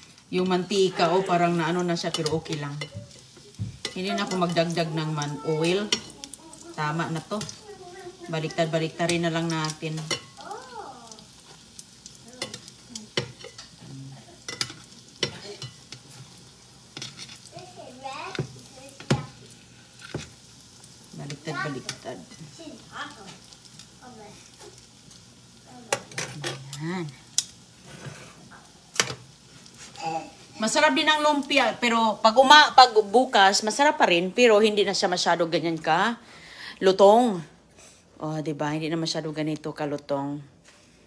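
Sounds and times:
food sizzling in oil: 0.0 - 36.2
metal tongs scraping pan: 0.4 - 6.2, 9.0 - 10.4, 12.4 - 13.8, 14.4 - 17.5, 27.4 - 29.2.

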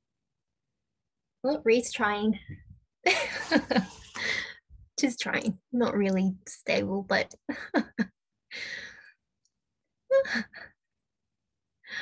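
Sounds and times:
woman laughing softly: 3.1 - 4.2.

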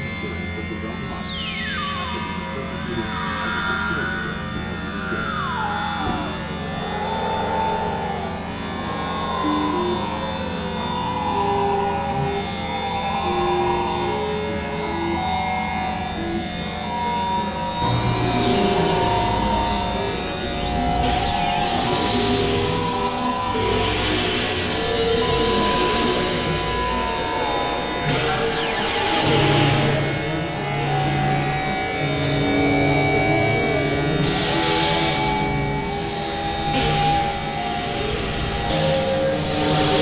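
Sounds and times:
synthesizer drone music: 0.0 - 40.0.

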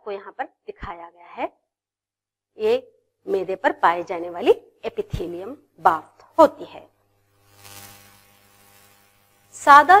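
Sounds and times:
faint electrical hum and buzz: 2.6 - 10.0
soft hiss: 4.9 - 10.0.

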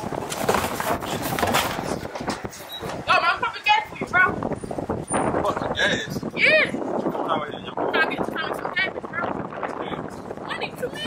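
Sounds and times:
plastic barrel scraping on asphalt: 0.0 - 2.4
outdoor background noise: 0.0 - 11.0.

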